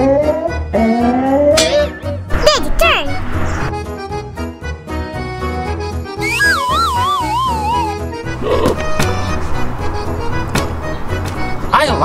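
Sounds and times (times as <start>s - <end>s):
background music: 0.0s - 12.0s
comic falling whistle: 6.2s - 8.1s.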